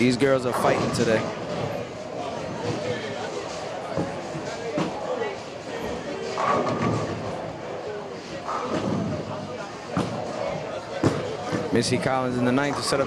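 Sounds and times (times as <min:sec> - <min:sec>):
people talking: 0:00.0 - 0:01.3, 0:07.8 - 0:13.0.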